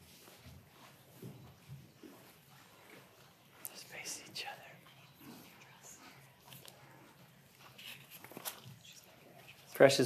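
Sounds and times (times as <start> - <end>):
person whispering: 3.6 - 6.0.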